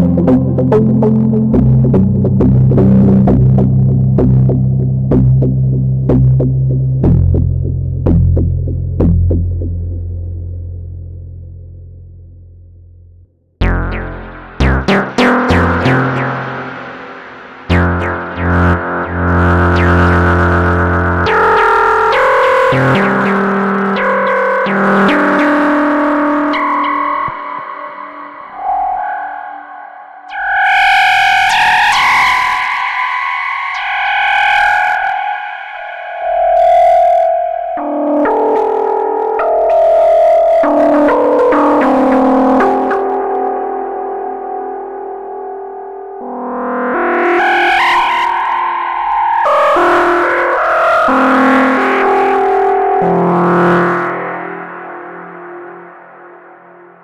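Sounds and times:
synthesizer bass notes with echoes: 0.0s - 57.0s.

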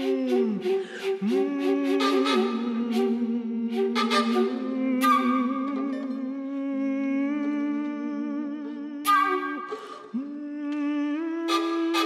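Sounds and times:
soft flute: 0.0s - 12.0s
violin: 0.0s - 12.0s
women humming: 0.0s - 12.0s.

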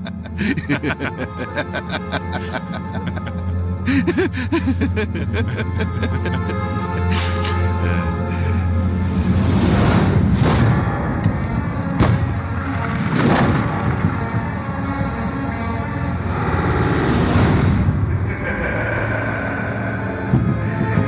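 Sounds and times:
dramatic film score: 0.0s - 21.0s
sharp gunshot: 12.0s - 12.3s
loud rushing swells: 16.2s - 20.8s.

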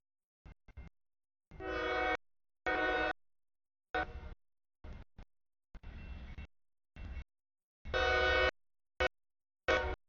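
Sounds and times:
locomotive air horn blasts: 1.6s - 3.2s, 3.9s - 4.4s, 7.9s - 10.0s.

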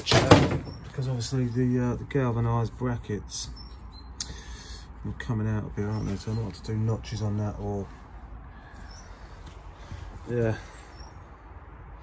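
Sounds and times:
low outdoor background noise: 0.0s - 12.0s
faint bird chirps: 3.3s - 4.8s, 8.6s - 11.3s.

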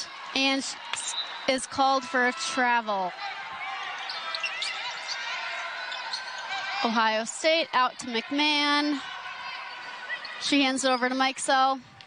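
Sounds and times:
crowd murmur: 0.0s - 11.6s
sneakers squeaking on court: 4.0s - 5.2s, 5.8s - 6.5s.

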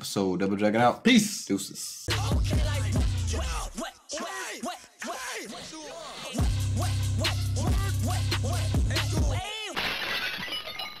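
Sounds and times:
hip-hop beat with heavy bass: 2.0s - 9.8s
glass shattering: 9.7s - 11.0s.

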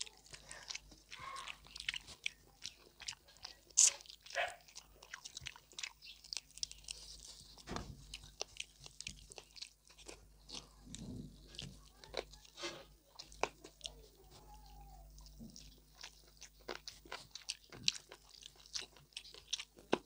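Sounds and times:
wet chewing and lip smacking: 0.0s - 20.0s.

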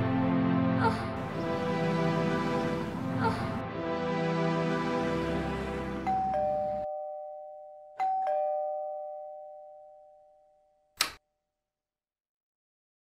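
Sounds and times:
background music: 0.0s - 6.9s
electronic doorbell ding-dong: 6.0s - 10.8s
sharp click: 11.0s - 11.2s.

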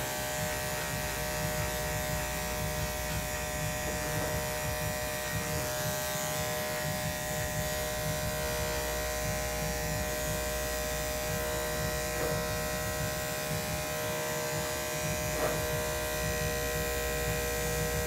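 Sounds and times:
electric clippers buzzing: 0.0s - 18.0s.

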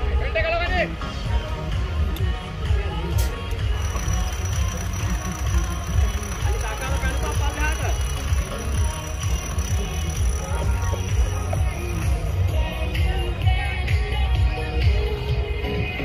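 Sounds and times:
music: 0.0s - 16.0s
voices: 0.0s - 16.0s
off-road vehicle engine running: 2.7s - 15.2s.

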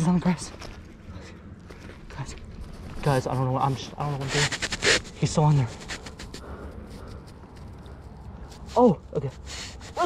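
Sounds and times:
clothing rubbing on microphone: 3.7s - 6.4s.

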